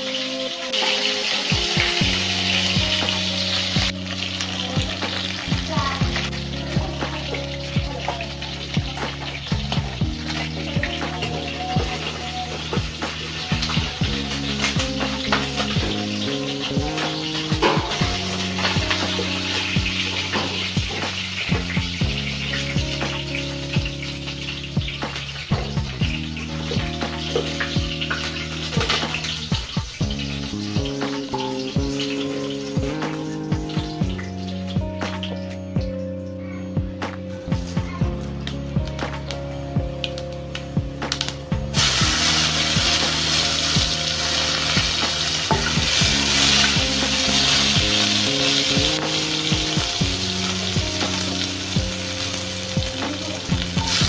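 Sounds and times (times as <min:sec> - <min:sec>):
food sizzling in hot oil: 0:00.0 - 0:36.6, 0:37.3 - 0:54.0
music with low sustained chords: 0:00.0 - 0:54.0.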